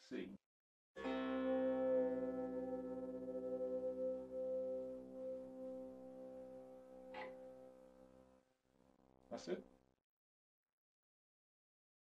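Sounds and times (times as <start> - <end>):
harp strings ringing: 7.0 - 7.6.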